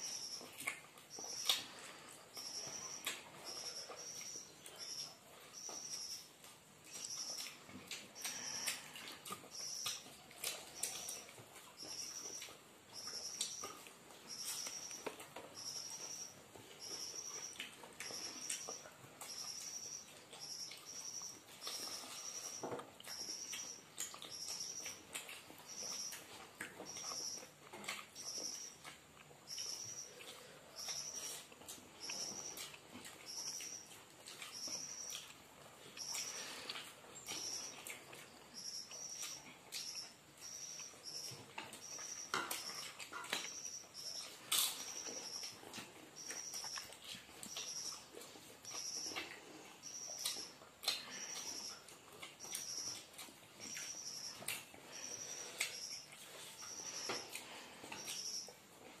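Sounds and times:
chewing and lip smacks: 0:00.3 - 0:59.0.

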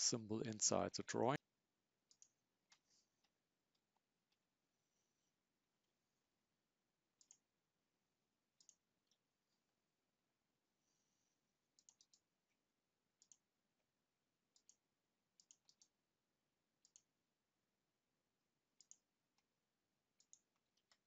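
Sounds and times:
computer mouse clicks: 0:02.1 - 0:04.4, 0:07.2 - 0:07.4, 0:08.6 - 0:09.2, 0:11.8 - 0:12.3, 0:13.2 - 0:13.5, 0:14.5 - 0:14.8, 0:15.4 - 0:16.0, 0:16.8 - 0:17.1, 0:18.8 - 0:19.5, 0:20.2 - 0:21.0.

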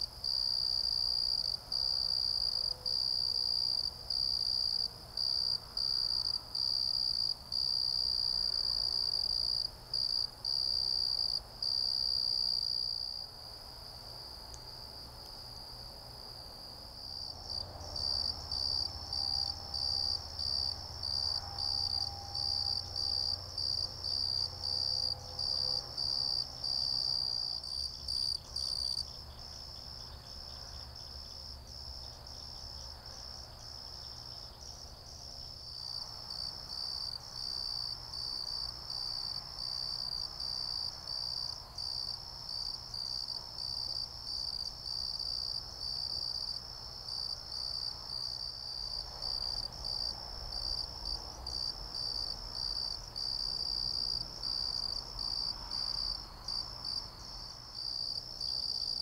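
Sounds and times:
cricket trilling: 0:17.0 - 0:35.2.

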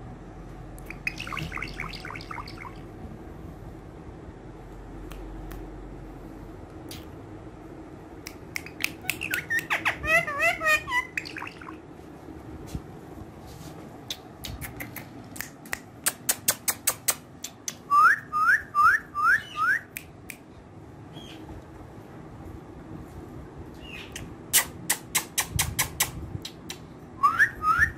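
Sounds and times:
parakeet clicking: 0:08.3 - 0:10.0.

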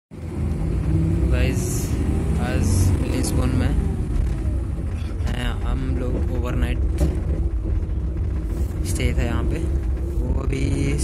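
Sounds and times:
bus engine and road rumble: 0:00.1 - 0:11.0.

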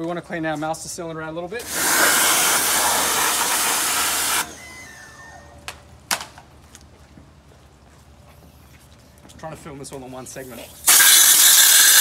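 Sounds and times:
compressed air blow gun hissing: 0:01.6 - 0:04.6, 0:10.8 - 0:12.0.

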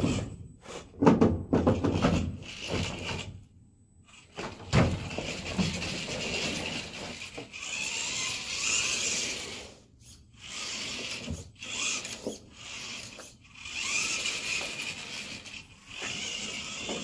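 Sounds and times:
toy car motor whining: 0:02.4 - 0:03.4, 0:04.0 - 0:17.0.

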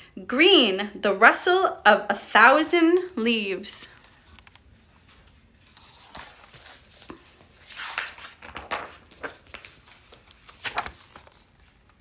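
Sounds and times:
paper rustling: 0:03.9 - 0:12.0.

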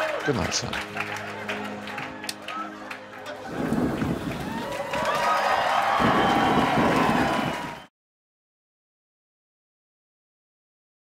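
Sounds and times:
heavy rain: 0:03.4 - 0:07.8
thunder rumbling: 0:03.5 - 0:05.2, 0:05.8 - 0:07.8.

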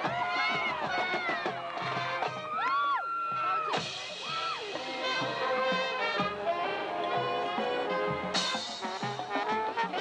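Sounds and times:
marching band playing: 0:00.0 - 0:10.0.

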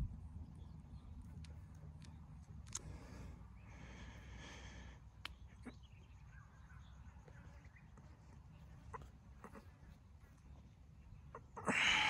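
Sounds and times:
low steady rumble: 0:00.0 - 0:05.4
faint animal calls: 0:08.6 - 0:10.0.

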